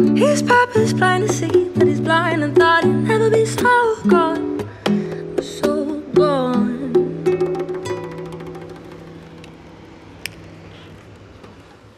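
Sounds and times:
acoustic guitar chord ringing: 7.0 - 10.1.

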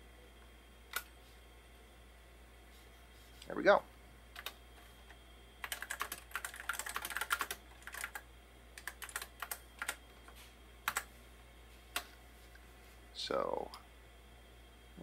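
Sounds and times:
keyboard typing: 4.4 - 4.6, 5.6 - 8.2, 8.8 - 10.1, 10.8 - 11.1.

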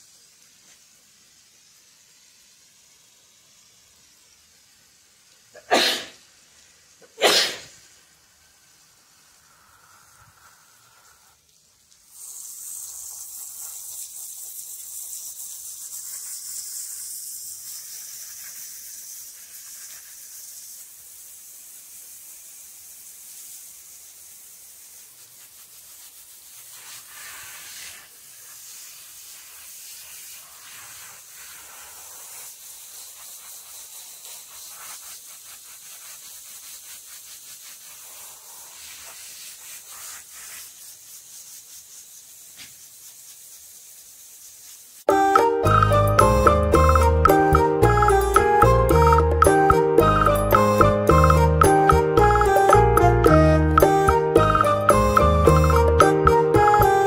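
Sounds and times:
water hissing from hose nozzle: 0.0 - 57.0.

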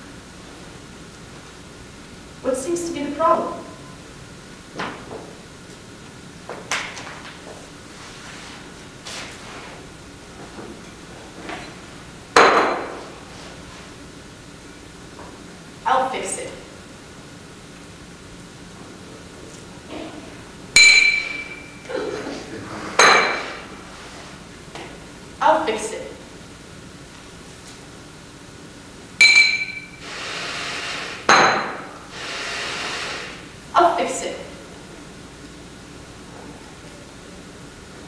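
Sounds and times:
hard object struck with clinking knocks: 20.8 - 21.7, 29.2 - 29.9.

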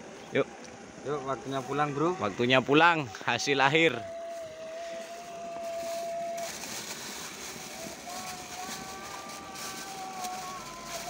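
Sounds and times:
motor-like hum: 0.0 - 11.0
plastic bag rustling: 3.8 - 11.0.

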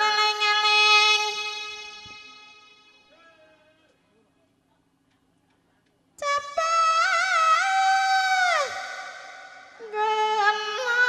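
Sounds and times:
woman singing amplified: 0.0 - 3.0, 6.2 - 11.0.

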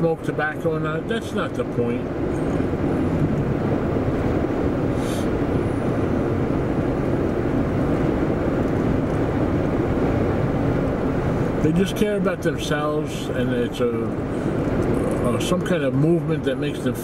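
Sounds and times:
car road and engine noise: 0.0 - 17.0
brief hiss: 4.9 - 5.3.

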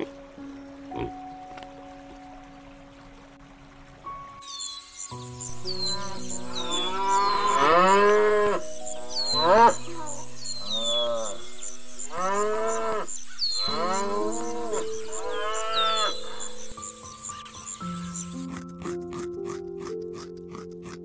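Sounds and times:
cow mooing: 6.0 - 16.4
background music with fast ticking: 13.4 - 21.0.

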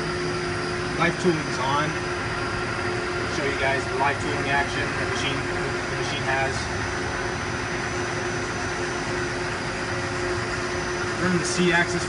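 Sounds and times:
machine hum with high whine: 0.0 - 12.0.

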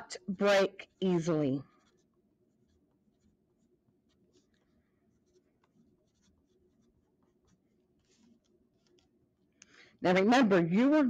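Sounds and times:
pencil writing on paper: 0.8 - 9.4.

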